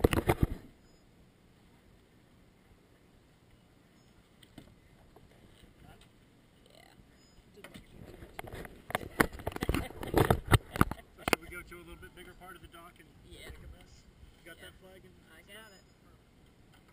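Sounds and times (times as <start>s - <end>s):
camera housing knocks and rubbing: 0.0s - 0.6s, 7.7s - 11.4s.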